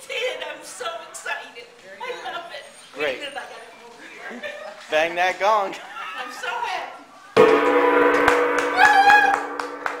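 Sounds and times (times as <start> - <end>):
large gong ringing: 7.4 - 10.0.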